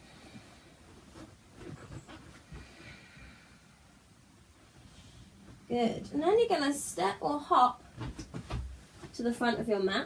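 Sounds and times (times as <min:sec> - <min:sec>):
rustles and knocks on yoga mat: 0:00.2 - 0:03.0, 0:07.8 - 0:09.6
faint breathing: 0:02.4 - 0:04.0.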